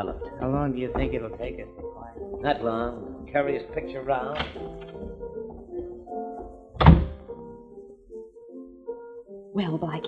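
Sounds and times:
soft held musical chords: 0.0 - 10.0
heavy door thud: 4.2 - 5.6, 6.8 - 7.3.

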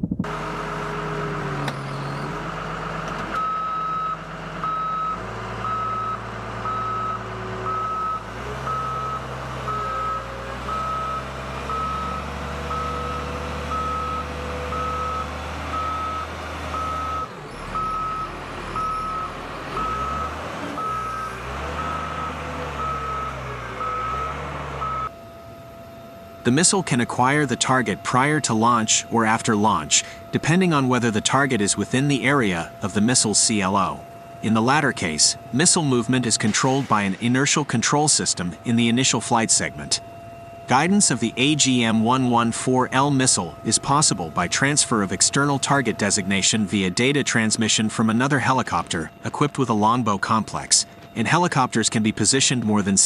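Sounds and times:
vehicle engine running: 0.0 - 53.0
reversing alarm beeping: 3.3 - 53.0.

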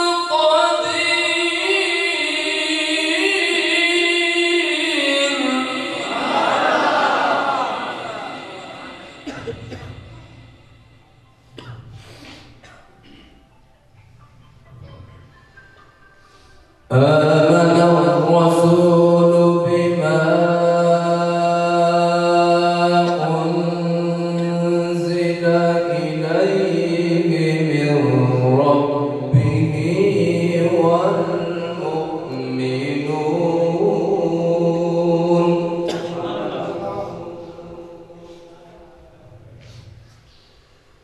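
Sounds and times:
man chanting recitation: 0.0 - 6.7, 16.9 - 40.4.

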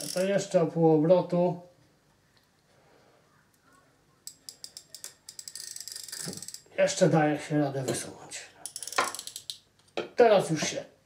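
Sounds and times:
fishing reel drag clicking: 0.0 - 0.3, 4.5 - 6.7.

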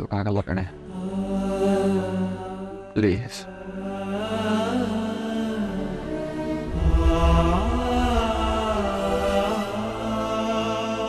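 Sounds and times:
chant-like vocal tone: 0.5 - 11.0
steady drone: 3.5 - 11.0.

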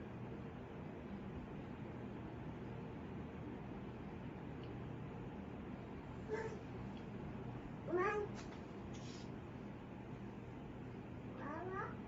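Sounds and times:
low steady background hiss: 0.0 - 12.0.

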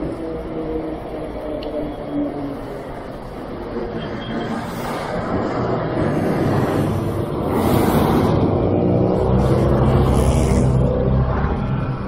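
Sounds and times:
road noise: 0.0 - 12.0
wind: 0.0 - 12.0.

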